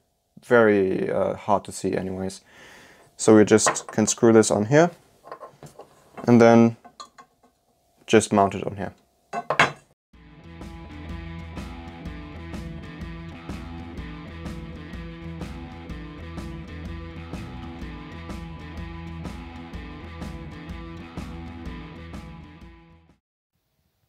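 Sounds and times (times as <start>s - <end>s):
music with guitar and beat: 10.2s - 22.9s.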